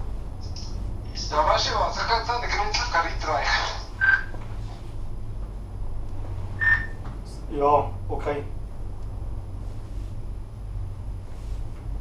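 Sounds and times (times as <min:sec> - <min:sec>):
gondola cabin humming: 0:00.0 - 0:12.0
short high chirp: 0:06.6 - 0:07.0.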